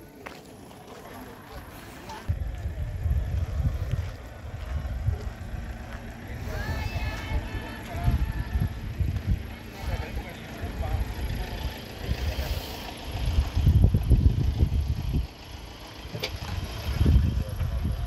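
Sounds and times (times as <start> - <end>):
wind buffeting the microphone: 2.2 - 9.9, 12.0 - 15.4, 16.4 - 18.0.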